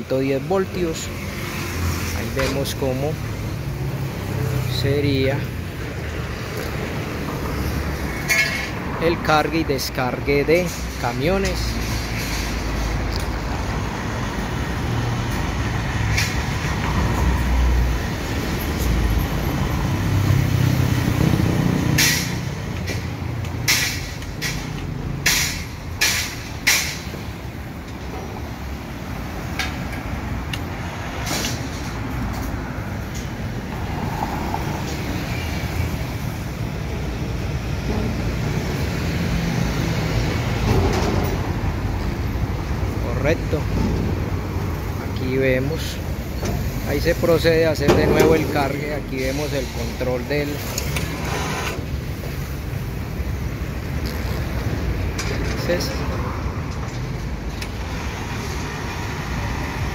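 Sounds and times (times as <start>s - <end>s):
street traffic: 0.0s - 59.9s.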